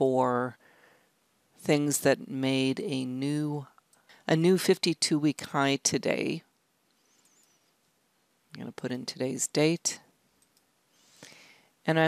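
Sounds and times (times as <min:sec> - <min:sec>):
person speaking: 0:00.0 - 0:00.6, 0:01.6 - 0:06.5, 0:08.5 - 0:10.1
soft hiss: 0:00.0 - 0:04.4, 0:06.1 - 0:12.0.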